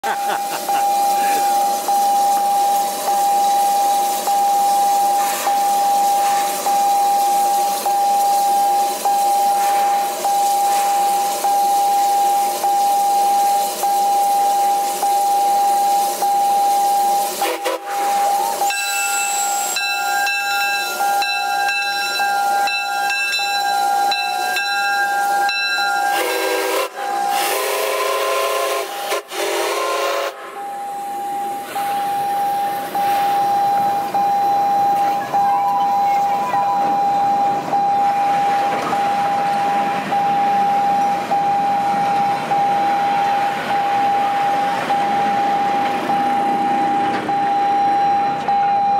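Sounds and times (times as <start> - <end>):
steam locomotive hissing: 0.0 - 48.4
train whistle: 10.4 - 34.0
high ringing tones: 18.2 - 27.4, 30.6 - 48.9.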